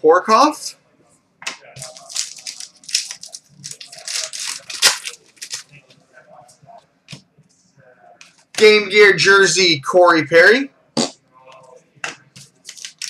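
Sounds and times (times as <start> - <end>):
cards shuffled by hand: 1.8 - 5.7, 12.4 - 13.0.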